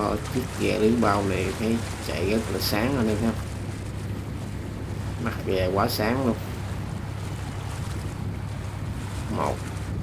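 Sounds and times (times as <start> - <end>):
choppy sea: 0.0 - 10.0
low steady rumble: 0.0 - 10.0
wind buffeting microphone: 0.0 - 10.0.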